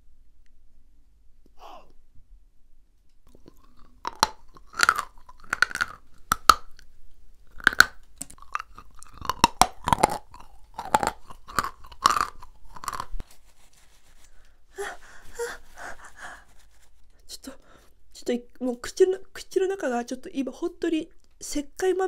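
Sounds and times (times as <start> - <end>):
chewing crunchy candy: 3.3 - 13.2.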